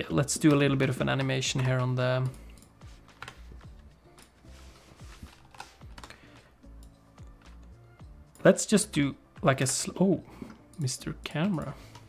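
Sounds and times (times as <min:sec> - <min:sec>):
quiet background music: 0:00.0 - 0:12.0
keyboard keys clicking: 0:00.4 - 0:04.3, 0:05.3 - 0:07.6.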